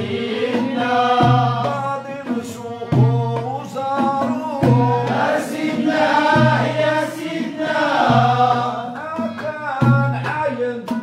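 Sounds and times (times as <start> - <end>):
men singing in unison: 0.0 - 11.0.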